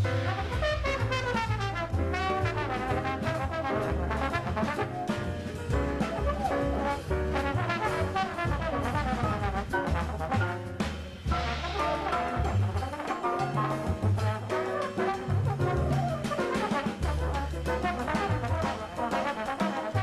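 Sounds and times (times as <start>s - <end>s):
walking bass: 0.0s - 18.9s
drums: 0.0s - 20.0s
piano: 0.0s - 20.0s
trombone lead line: 0.0s - 20.0s.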